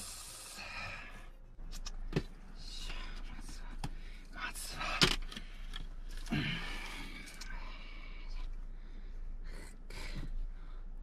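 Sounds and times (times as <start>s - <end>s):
soft breathy hiss: 0.0s - 1.2s.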